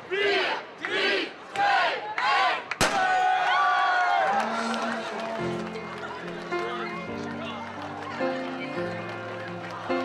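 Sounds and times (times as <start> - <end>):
crowd chanting countdown: 0.0 - 2.7
crowd shouting and cheering: 0.0 - 10.0.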